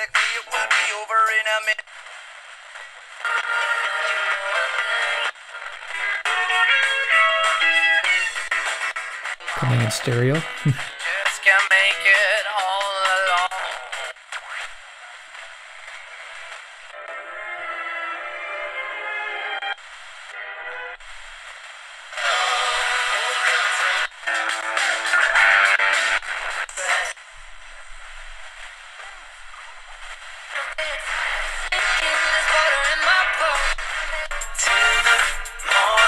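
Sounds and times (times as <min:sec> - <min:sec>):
radio stations through small speaker: 0:00.0 - 0:07.2, 0:08.5 - 0:17.0, 0:19.8 - 0:36.0.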